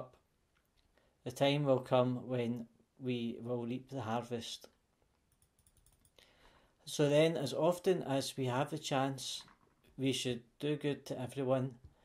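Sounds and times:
soft breath: 6.0 - 6.8.

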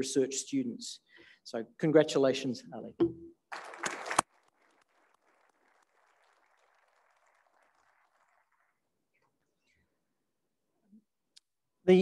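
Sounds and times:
audience applause: 3.5 - 9.0.

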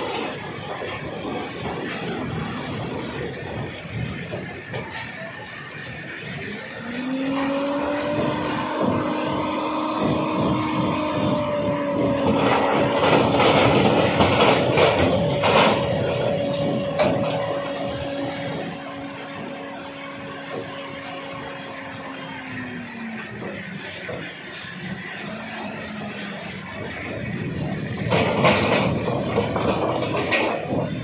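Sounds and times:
machine drone: 0.0 - 31.0.

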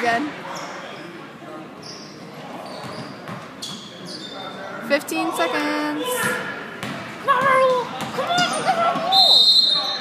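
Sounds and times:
low crowd chatter: 0.0 - 10.0
sneakers squeaking on court: 1.8 - 10.0.

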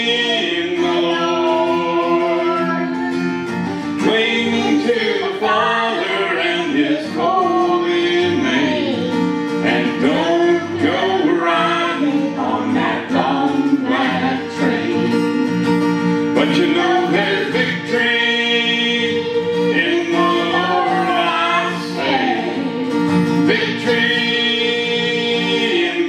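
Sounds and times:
strummed acoustic guitar: 0.0 - 26.0
voices singing gospel song: 0.0 - 26.0.

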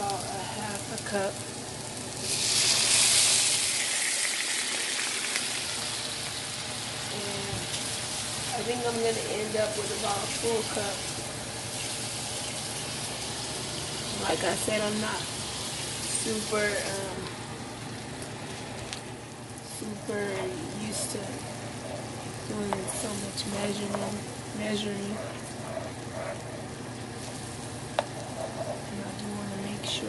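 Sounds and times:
water sizzling in a frying pan: 0.0 - 25.1, 25.9 - 29.7.

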